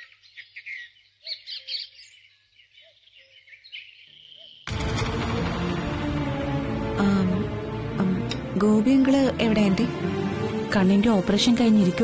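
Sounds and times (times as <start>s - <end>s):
birds chirping: 0.0s - 4.7s.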